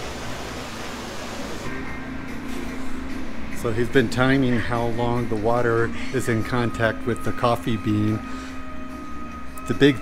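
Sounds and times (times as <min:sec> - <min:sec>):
faint background music: 0:01.0 - 0:10.0.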